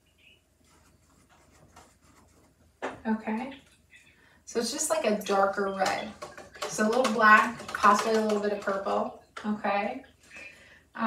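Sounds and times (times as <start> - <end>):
paintbrush strokes on canvas: 0.6 - 2.6.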